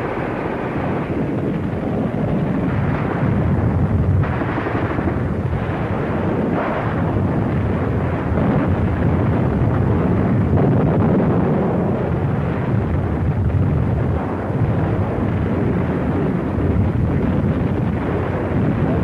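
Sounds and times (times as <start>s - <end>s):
rumble of explosions: 0.0s - 19.0s
gunfire: 4.2s - 10.8s.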